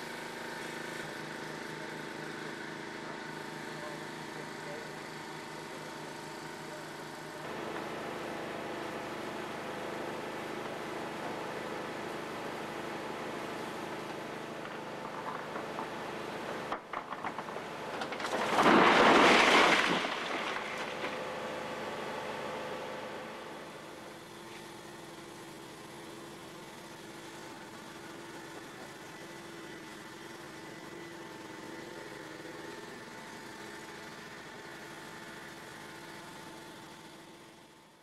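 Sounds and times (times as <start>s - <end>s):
vehicle engine idling: 0.0s - 18.4s, 20.3s - 38.0s.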